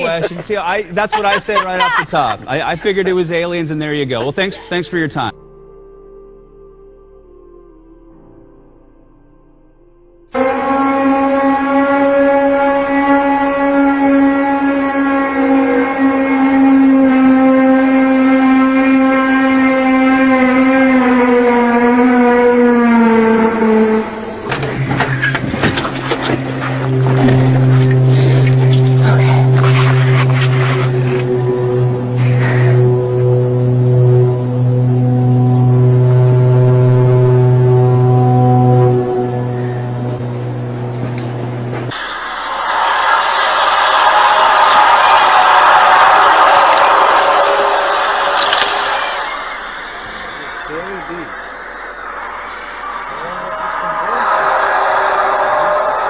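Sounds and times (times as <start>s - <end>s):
low horn-like drone: 0.0s - 56.0s.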